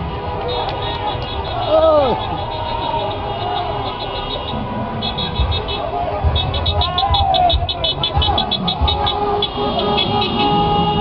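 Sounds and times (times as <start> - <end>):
car engines: 0.0 - 11.0
car horns honking: 0.0 - 11.0
low thuds of passing cars: 4.6 - 11.0.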